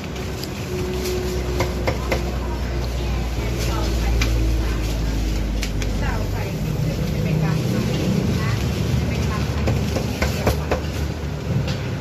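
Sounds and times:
background chatter: 0.0 - 12.0
low rumble of traffic: 0.0 - 12.0.

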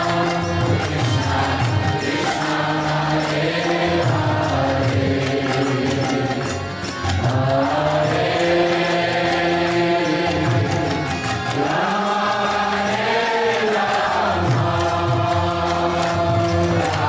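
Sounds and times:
harmonium chords: 0.0 - 17.0
voices chanting: 0.0 - 17.0.

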